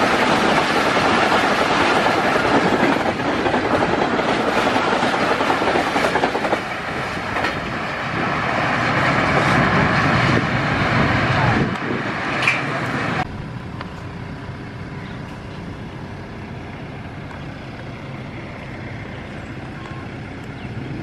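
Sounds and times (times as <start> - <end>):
train wheels rushing over rails: 0.0 - 21.0.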